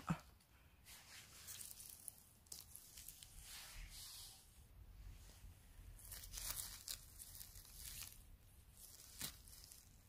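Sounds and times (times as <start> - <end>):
rustling and tearing of grass: 0.9 - 4.3, 5.9 - 10.0.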